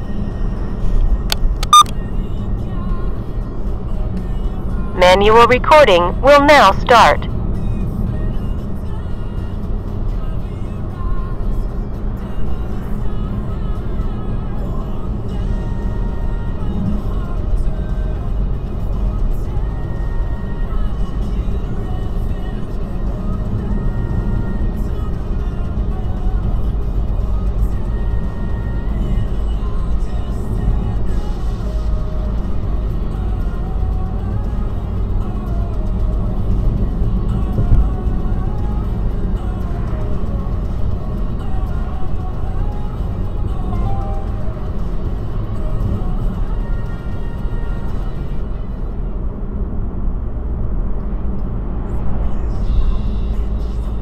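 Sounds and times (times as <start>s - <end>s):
quiet music: 0.0s - 50.1s, 50.8s - 54.0s
road and engine rumble: 0.0s - 54.0s.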